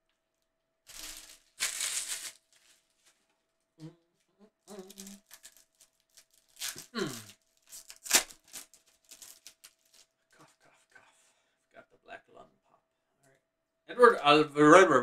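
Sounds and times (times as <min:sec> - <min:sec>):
person coughing: 0:06.9 - 0:07.3.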